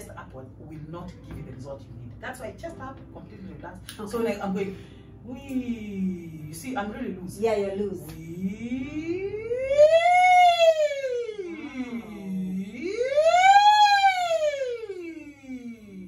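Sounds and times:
woman singing vocal siren: 8.6 - 16.0.

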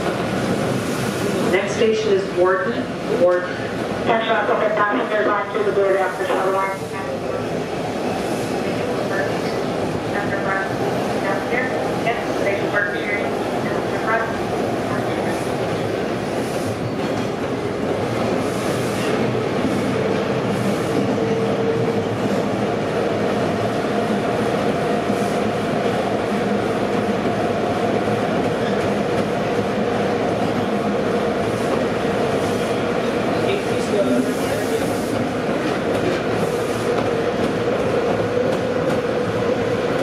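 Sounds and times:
subway wheels rumbling on rail: 0.0 - 40.0.

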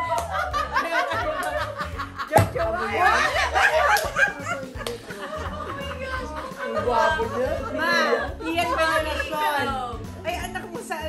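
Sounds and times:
women laughing: 0.0 - 9.6
background music with bass: 0.0 - 11.0.

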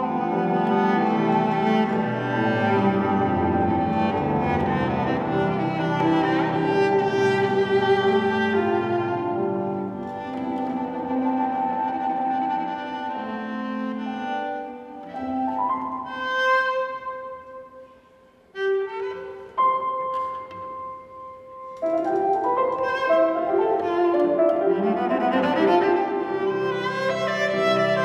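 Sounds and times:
bowed cello notes: 0.0 - 28.0
grand piano: 0.0 - 28.0.

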